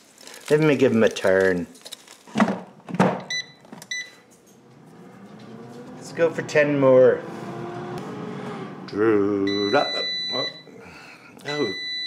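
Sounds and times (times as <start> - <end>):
short beeps: 3.3 - 4.2, 9.5 - 10.7, 11.5 - 12.0
fan humming: 3.3 - 11.4.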